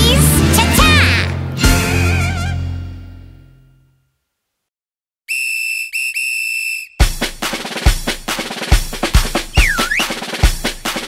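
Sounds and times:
whistle blasts: 5.3 - 7.1, 9.5 - 10.2
fast hand-drum music: 7.0 - 11.0.

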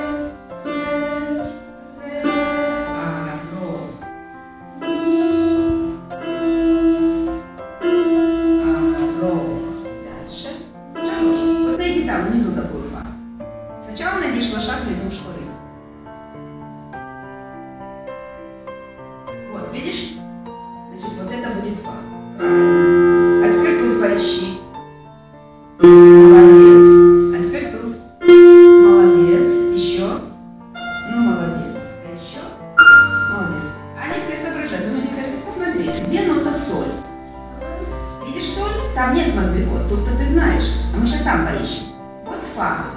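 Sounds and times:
electronic keyboard notes: 0.0 - 1.5, 2.1 - 3.7, 4.8 - 13.0, 22.3 - 24.8, 25.8 - 31.9, 32.8 - 34.3, 35.8 - 42.2.

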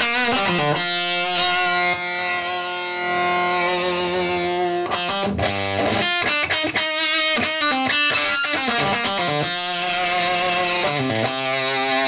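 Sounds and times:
fuzzed electric guitar note: 0.0 - 6.3.

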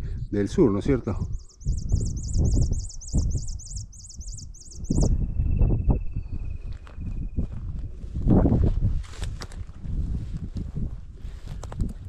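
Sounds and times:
wind buffeting microphone: 0.0 - 12.0
bird singing high wavering notes: 0.5 - 7.4.

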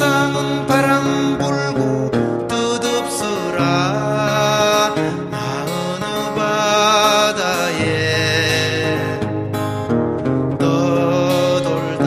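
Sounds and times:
strummed acoustic guitar: 0.0 - 12.0
person singing long notes: 10.5 - 12.0.

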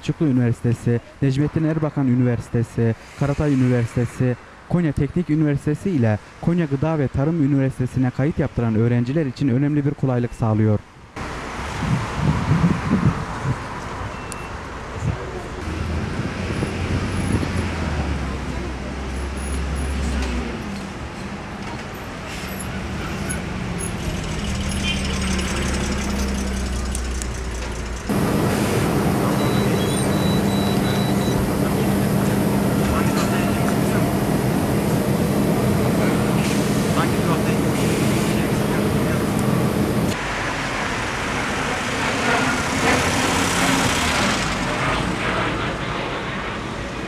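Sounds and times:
street traffic: 0.0 - 47.0
buses running and idling: 10.9 - 47.0
low engine hum: 22.8 - 40.2
people's voices: 28.1 - 40.2.

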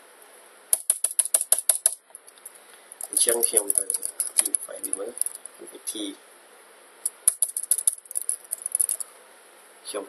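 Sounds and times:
keyboard key clicks: 7.1 - 9.0.

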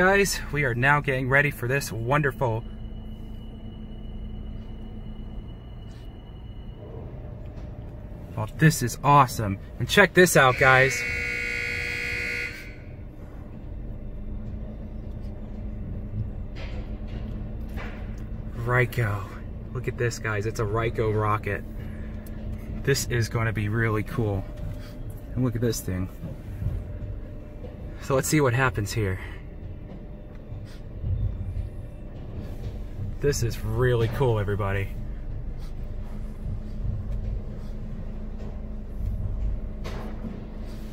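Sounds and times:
faint steady hum: 0.0 - 40.9
low rumble inside car: 0.0 - 40.9.

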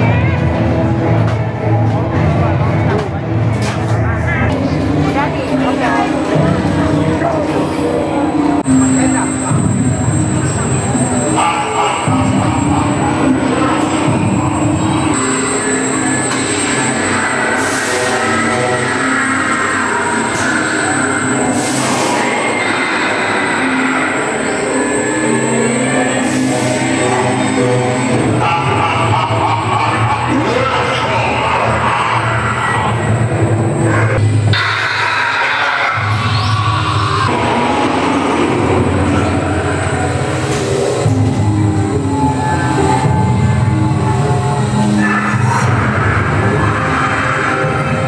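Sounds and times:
ride car rumbling on track: 0.0 - 48.0
soundtrack music: 0.0 - 48.0.

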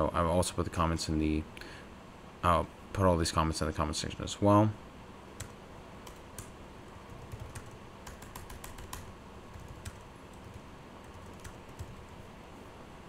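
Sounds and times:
typing on computer keyboard: 7.1 - 12.1.

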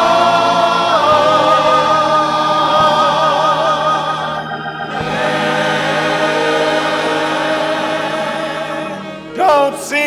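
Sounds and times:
church choir singing: 0.0 - 10.0.

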